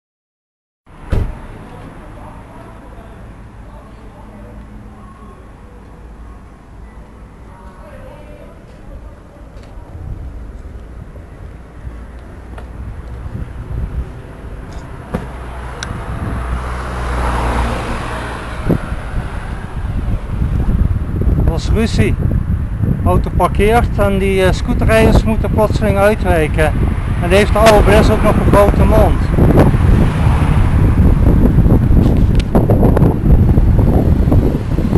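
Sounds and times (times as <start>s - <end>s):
car passing: 0.9s - 23.0s, 26.2s - 34.9s
low rumble of traffic: 0.9s - 34.9s
vehicle and road noise: 0.9s - 34.9s
wind buffeting microphone: 8.2s - 34.9s.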